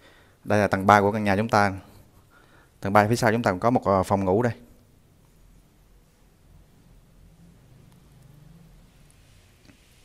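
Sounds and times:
faint low hum: 0:00.1 - 0:10.0.

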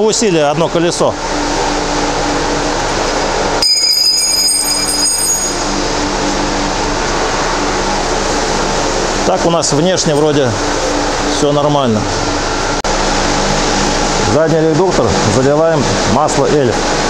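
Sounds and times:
high-pitched whine: 0:00.0 - 0:17.0
workshop mechanical hum and hiss: 0:00.0 - 0:17.0.

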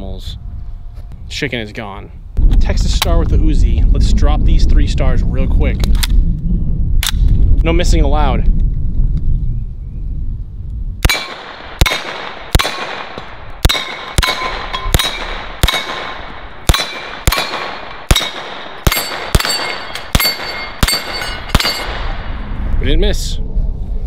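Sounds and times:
gunshots: 0:11.0 - 0:22.4
steel target ringing clang: 0:13.7 - 0:16.0, 0:16.7 - 0:22.2.

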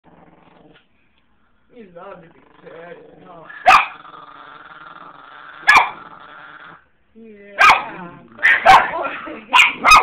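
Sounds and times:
dog growling low: 0:00.0 - 0:00.9, 0:02.2 - 0:06.9.

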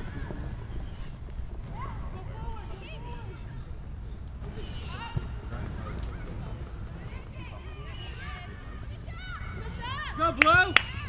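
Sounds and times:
players shouting: 0:04.4 - 0:11.0.

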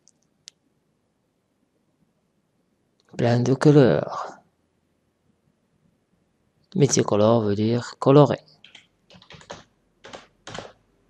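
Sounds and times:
computer keyboard typing: 0:08.6 - 0:10.8.

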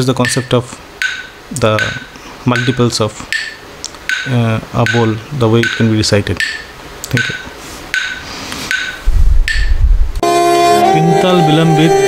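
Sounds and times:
metronome ticking: 0:00.0 - 0:10.3.

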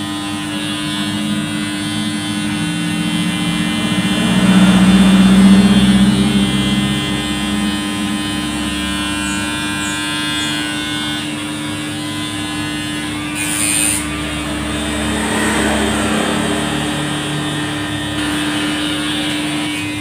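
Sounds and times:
electric hair trimmer buzzing: 0:00.0 - 0:20.0.

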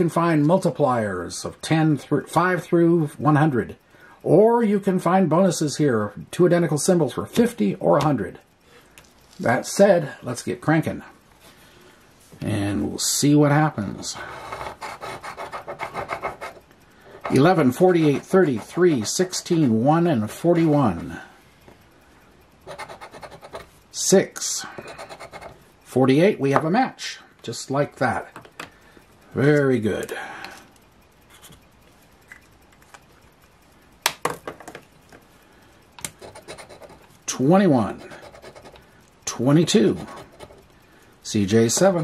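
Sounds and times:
scratcher scraping lottery ticket: 0:14.0 - 0:16.6, 0:17.2 - 0:19.8, 0:22.6 - 0:23.7, 0:24.8 - 0:25.6, 0:36.2 - 0:37.0, 0:37.8 - 0:38.8, 0:39.6 - 0:40.7.

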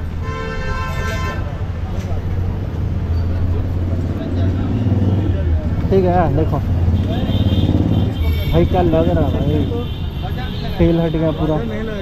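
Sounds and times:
street traffic hum: 0:00.0 - 0:12.0
vehicle horn: 0:00.2 - 0:01.5, 0:06.9 - 0:12.0.

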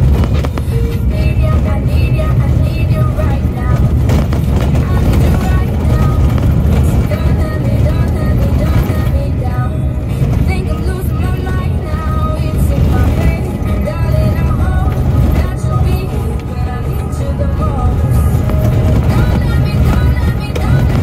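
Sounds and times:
truck driving on gravel: 0:00.0 - 0:21.0
song with singing voice: 0:00.6 - 0:21.0.

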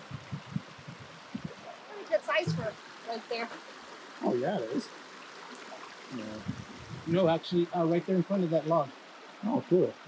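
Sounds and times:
creek water running over rocks: 0:00.0 - 0:10.0.

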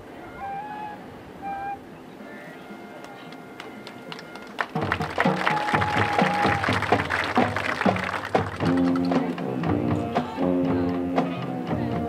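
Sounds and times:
marching band brass and drums: 0:02.5 - 0:12.0.

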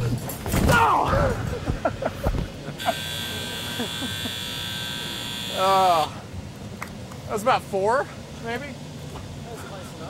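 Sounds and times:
high-pitched electric buzz: 0:02.8 - 0:06.2.

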